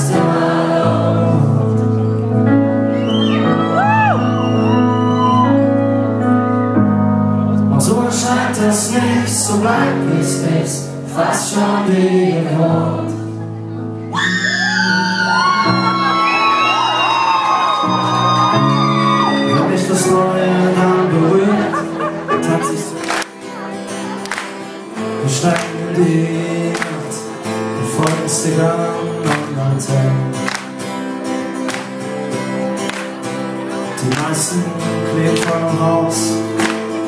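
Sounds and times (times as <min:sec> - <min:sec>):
live pop band: 0:00.0 - 0:06.6, 0:07.5 - 0:37.0
whoops: 0:02.9 - 0:05.7, 0:14.1 - 0:19.7
person singing: 0:07.6 - 0:17.1, 0:17.8 - 0:30.5, 0:32.1 - 0:37.0
acoustic guitar strumming: 0:15.0 - 0:37.0.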